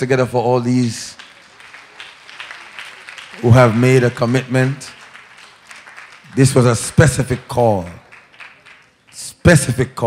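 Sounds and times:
congregation applauding: 0.6 - 10.0.

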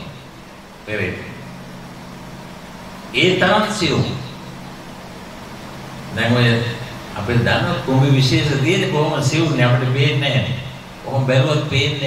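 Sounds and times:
low hum: 0.0 - 12.0
man speaking: 0.9 - 1.5, 3.1 - 4.4, 6.1 - 12.0.

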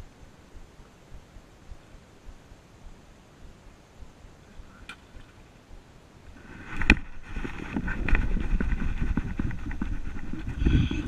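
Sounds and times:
rustling and rumbling handling: 6.3 - 11.0.

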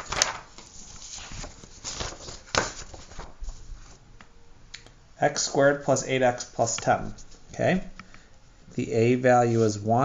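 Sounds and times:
paper rustling: 0.0 - 4.0.

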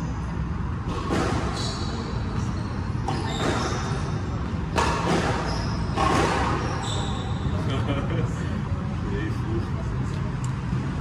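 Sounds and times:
shoes squeaking on wooden floor: 1.1 - 4.2, 4.8 - 7.4
squash ball smacks: 4.7 - 6.6.

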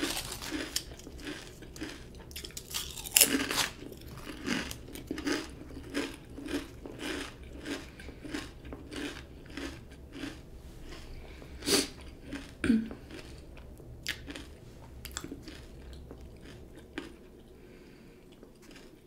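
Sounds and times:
chewing: 0.0 - 19.0
crunching potato chips: 0.0 - 19.0.

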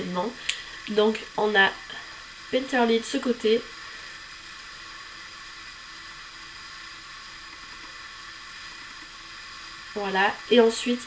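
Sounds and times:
faint hum: 0.0 - 11.0
steady hiss: 0.0 - 11.0.

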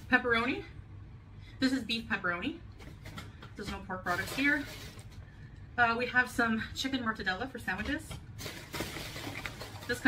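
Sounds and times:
plastic bag rustling: 3.9 - 5.3, 8.3 - 10.0.

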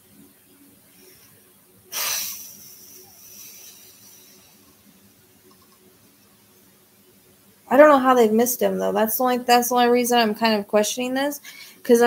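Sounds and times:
person exhaling sharply: 1.9 - 3.9.

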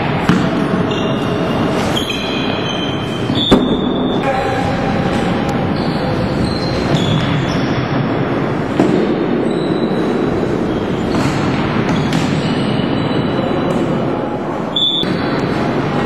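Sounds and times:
floorball game in sports hall: 0.0 - 16.0
brief high squeaks: 1.9 - 3.8, 14.7 - 15.2.

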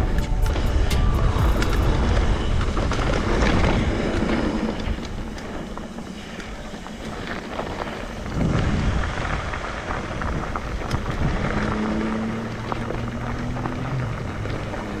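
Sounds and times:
steady low hum: 0.0 - 11.6
bike tyres crunching on gravel: 0.0 - 15.0
wind rumbling on microphone: 0.0 - 15.0.

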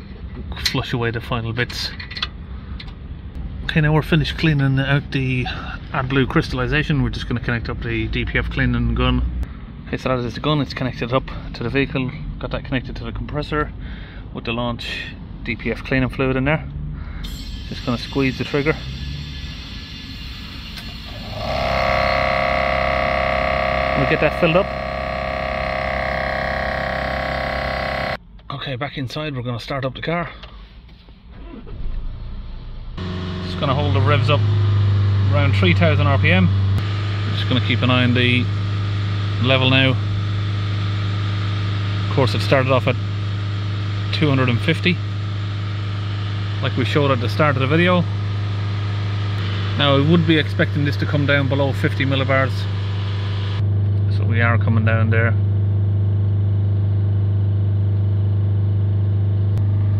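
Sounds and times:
diesel engine starting and revving: 16.4 - 28.2, 31.3 - 53.6.

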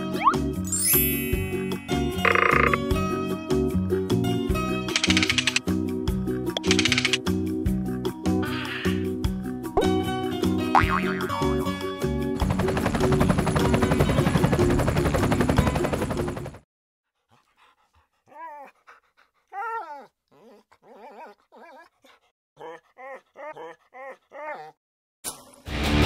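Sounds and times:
music: 0.0 - 16.6, 25.5 - 26.0.

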